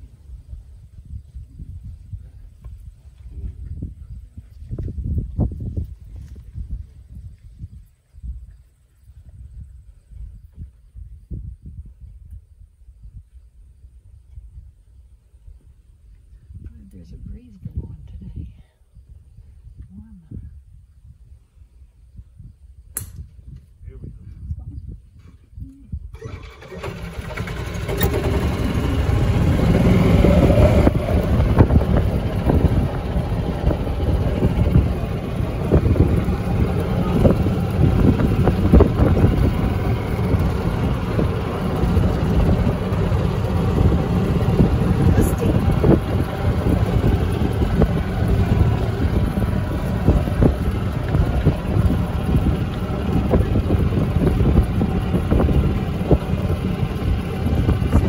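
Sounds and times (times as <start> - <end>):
wind on microphone: 0.0 - 58.0
golf cart rumbling on gravel: 26.2 - 58.0.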